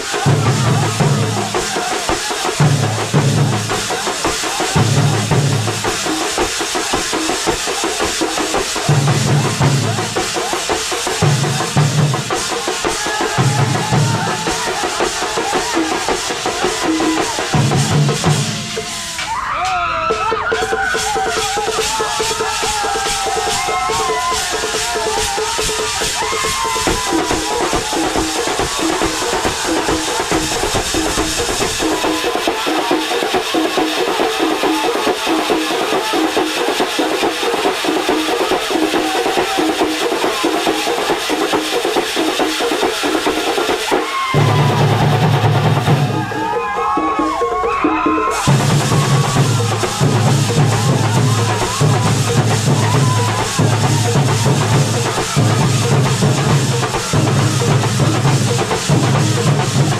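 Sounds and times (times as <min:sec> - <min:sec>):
fast drumming on bass drums: 0:00.0 - 0:59.9.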